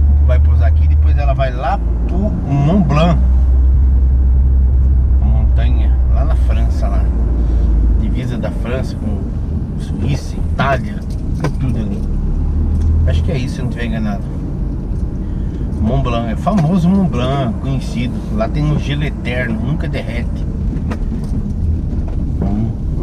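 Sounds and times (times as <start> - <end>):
car engine and road drone: 0.0 - 23.0
man talking: 0.2 - 3.3, 5.2 - 7.2, 8.0 - 12.0, 13.0 - 14.3, 15.8 - 20.4, 22.4 - 23.0.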